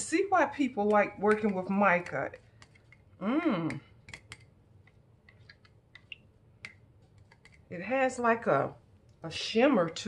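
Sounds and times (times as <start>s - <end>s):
stirrer tapping small cup: 0.7s - 7.7s.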